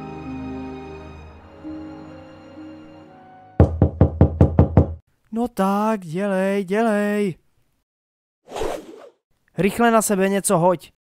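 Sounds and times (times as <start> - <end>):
knocking on a door: 3.6 - 5.0.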